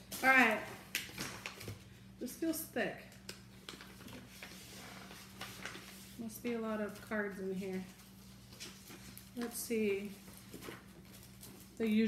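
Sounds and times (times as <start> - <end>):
paper rustling and crinkling: 3.6 - 12.0.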